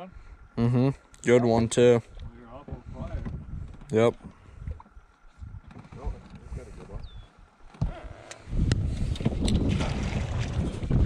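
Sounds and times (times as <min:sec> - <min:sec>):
wind rumbling on microphone: 0:02.1 - 0:11.0.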